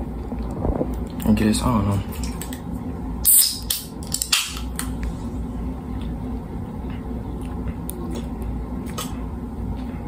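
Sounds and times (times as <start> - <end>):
soda can crack and hiss: 3.2 - 4.6.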